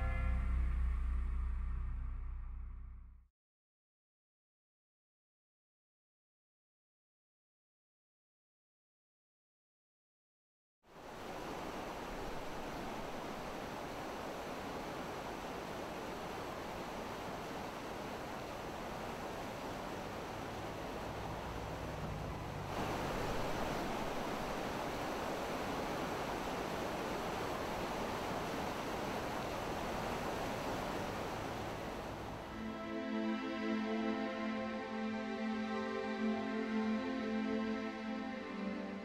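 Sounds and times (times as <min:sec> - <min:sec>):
rushing water: 0:10.9 - 0:39.0.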